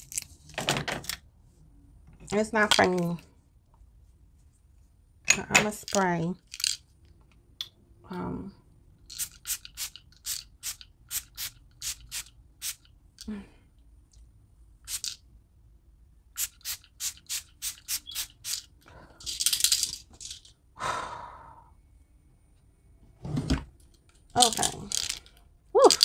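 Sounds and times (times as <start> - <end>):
spray bottle spritzes: 9.1 - 12.9, 14.9 - 15.2, 16.4 - 18.7
person breathing: 20.8 - 21.9.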